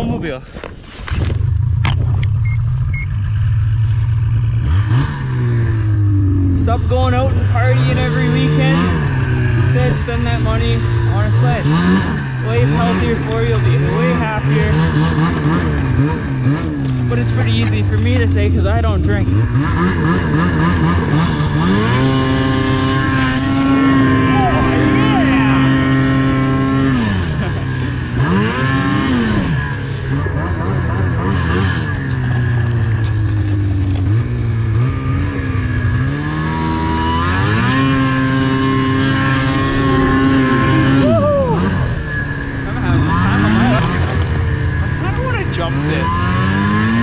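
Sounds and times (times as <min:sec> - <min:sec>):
snowmobile engine revving: 0:01.1 - 0:47.0.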